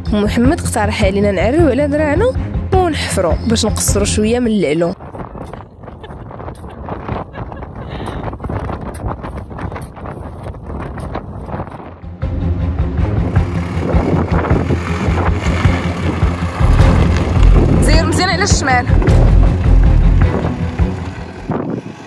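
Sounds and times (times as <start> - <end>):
off-road vehicle engine under load: 8.0 - 22.0.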